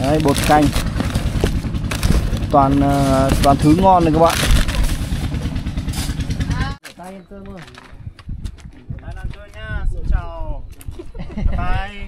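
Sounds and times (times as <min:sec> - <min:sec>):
cardboard and packages rustling: 0:00.0 - 0:05.5
motorbike engine idling: 0:00.0 - 0:06.8.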